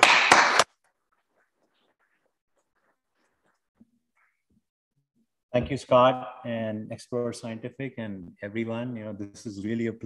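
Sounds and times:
hands clapping: 0.0s - 0.8s.

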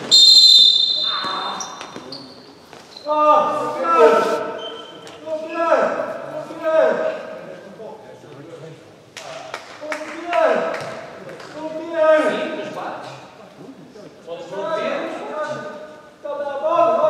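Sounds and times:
trainers squeaking on floor: 4.0s - 5.1s.

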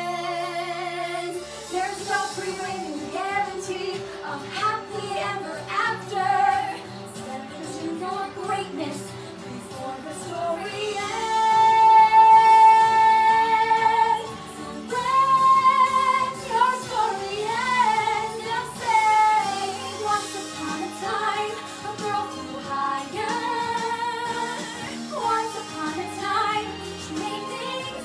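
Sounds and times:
musical accompaniment: 0.0s - 28.0s
woman singing pop song: 0.0s - 28.0s.

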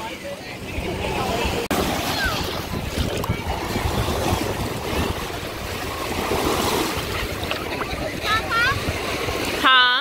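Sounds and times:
small waves washing on sand: 0.0s - 10.0s
wind on microphone: 0.6s - 9.6s.

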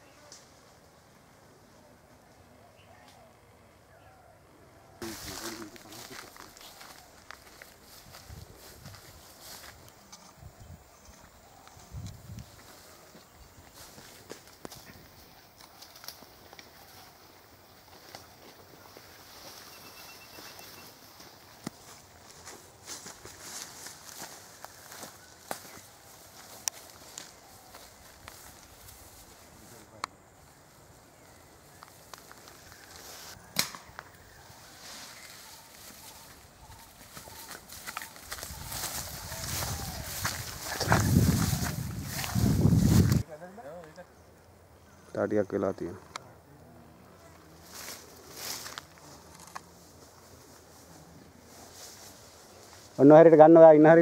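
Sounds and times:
footsteps through dry grass: 5.0s - 43.3s, 47.2s - 54.0s
twigs snapping underfoot: 13.9s - 16.8s, 21.6s - 28.8s, 31.7s - 34.2s
twigs snapping: 15.5s - 16.8s, 33.6s - 34.2s.

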